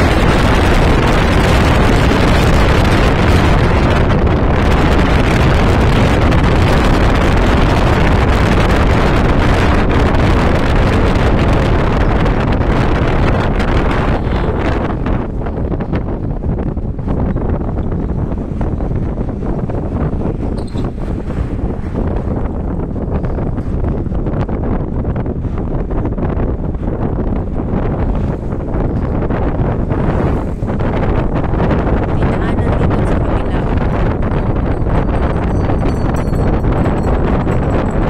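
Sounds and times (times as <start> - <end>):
vehicle road noise: 0.0 - 38.0
wind buffeting microphone: 0.0 - 38.0.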